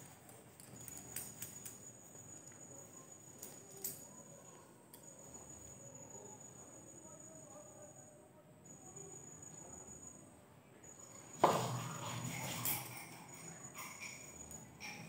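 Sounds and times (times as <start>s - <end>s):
faint high-pitched whine: 0.0s - 15.0s.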